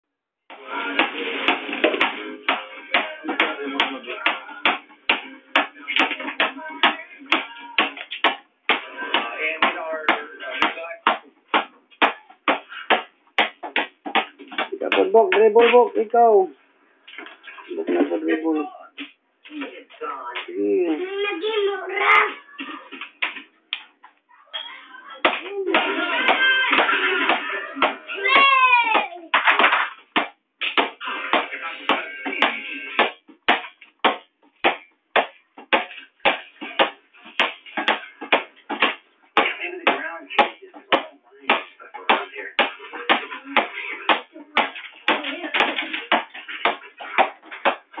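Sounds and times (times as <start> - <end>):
ball bouncing on hard floor: 1.0 - 15.8, 25.2 - 48.0
children's voices: 21.0 - 23.0, 24.3 - 29.4.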